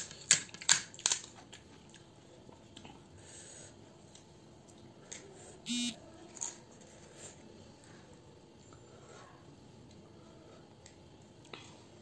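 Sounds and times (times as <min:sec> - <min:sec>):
crisp clicks of shell cracking: 0:00.0 - 0:01.6
short electronic buzz: 0:05.7 - 0:06.0.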